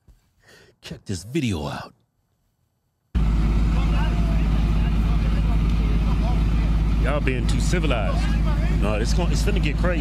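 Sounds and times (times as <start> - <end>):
diesel truck engine idling: 3.2 - 10.0.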